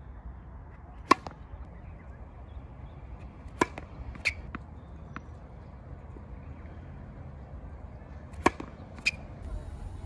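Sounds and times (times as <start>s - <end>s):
racket hitting tennis ball: 0.9s - 1.4s, 3.4s - 5.3s, 8.3s - 9.4s.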